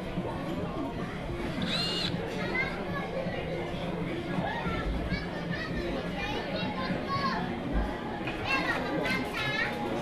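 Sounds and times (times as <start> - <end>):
restaurant chatter: 0.0 - 10.0.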